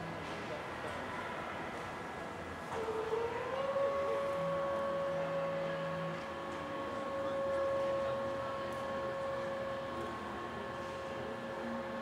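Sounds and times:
machinery whine: 2.7 - 12.0.

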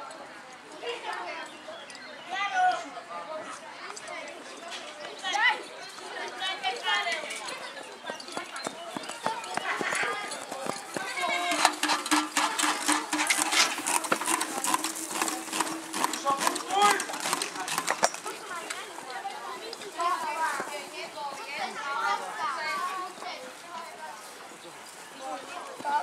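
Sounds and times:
voices calling out and talking: 0.0 - 26.0
sharp knocks and clatters: 10.9 - 18.4.

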